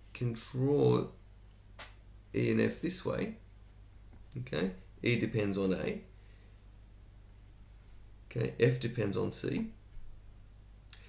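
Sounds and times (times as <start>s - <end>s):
low steady hum: 0.0s - 11.0s
marker strokes on whiteboard: 3.2s - 4.4s, 7.3s - 8.1s.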